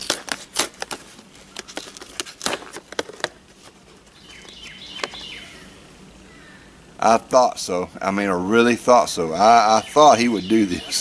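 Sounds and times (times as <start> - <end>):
cardboard box tearing: 0.0 - 4.0.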